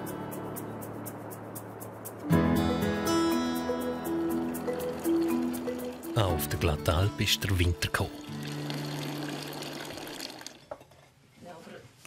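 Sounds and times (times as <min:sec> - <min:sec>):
water pouring from fountain: 0:04.3 - 0:10.7
person speaking: 0:06.1 - 0:08.3.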